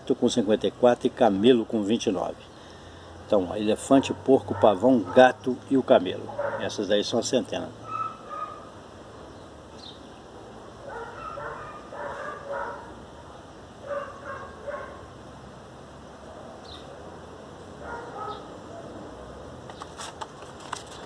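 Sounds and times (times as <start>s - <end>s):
dog barking faintly: 3.9s - 5.6s, 6.2s - 6.8s, 7.8s - 8.7s, 10.8s - 15.1s, 17.8s - 19.1s.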